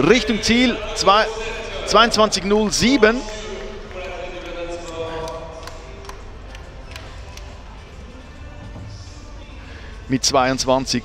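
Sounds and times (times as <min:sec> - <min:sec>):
distant voice: 0:00.0 - 0:09.6.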